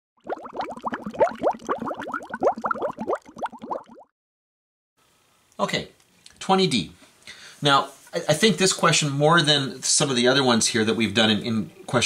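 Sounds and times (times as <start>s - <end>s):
bubbling water bloops: 0.2s - 4.1s.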